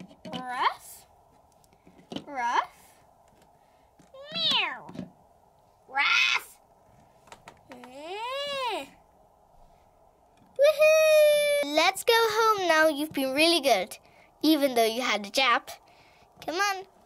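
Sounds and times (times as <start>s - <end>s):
person imitating cat meows: 4.2s - 4.9s.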